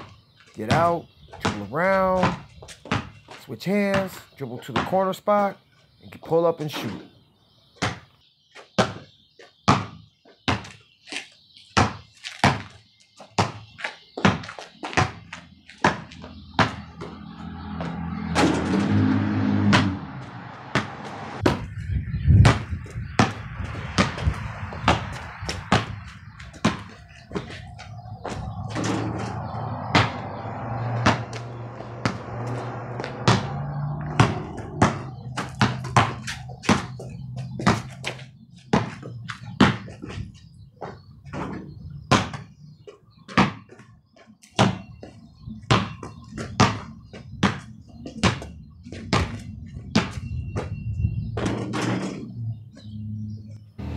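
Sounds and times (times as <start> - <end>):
basketball bouncing on concrete: 0.6 - 5.2, 7.8 - 8.2, 8.8 - 10.8, 11.7 - 18.4, 19.6 - 28.9, 29.9 - 52.1.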